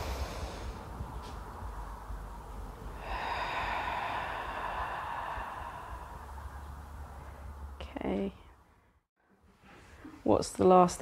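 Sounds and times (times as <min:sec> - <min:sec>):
person breathing out: 0:00.0 - 0:00.8, 0:03.0 - 0:06.7
low steady rumble: 0:00.0 - 0:09.0.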